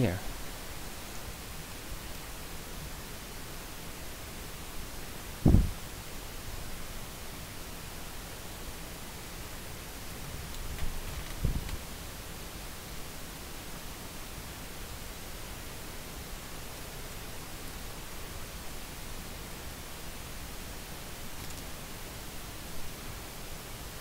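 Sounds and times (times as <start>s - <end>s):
microphone hiss: 0.0s - 24.0s
low thumps: 5.4s - 5.8s.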